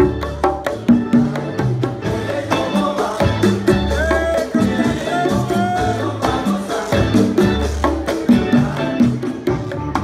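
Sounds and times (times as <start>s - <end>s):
bass line: 0.0s - 10.0s
conga drums: 0.0s - 10.0s
salsa music: 0.0s - 10.0s.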